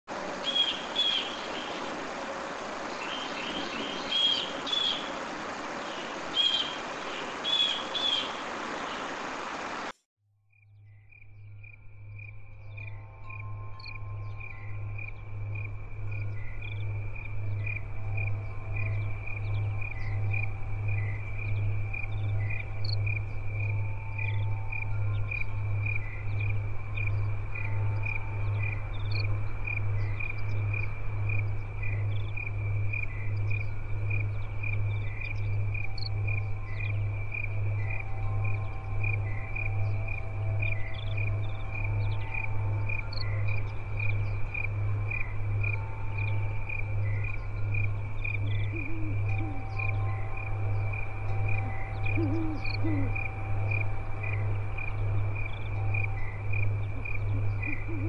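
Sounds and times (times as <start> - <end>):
crickets chirping: 0.1 - 58.0
pulsing low drone: 10.8 - 58.0
faint tones and calls: 48.7 - 55.0.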